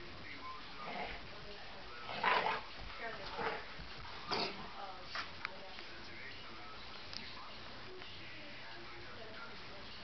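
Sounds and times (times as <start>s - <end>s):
dogs vocalizing while playing: 2.0s - 4.7s.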